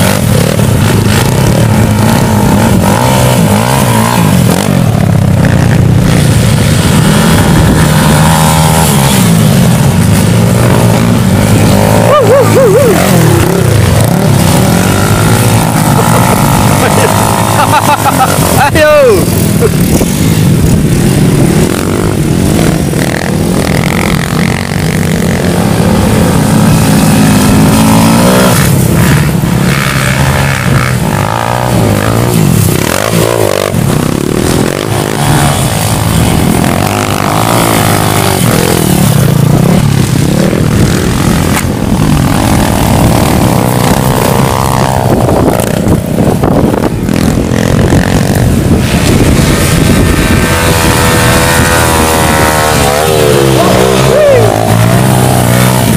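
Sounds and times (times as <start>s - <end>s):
motorcycles revving: 0.0s - 55.9s
people's voices: 11.9s - 14.7s, 15.7s - 19.8s, 53.3s - 55.1s.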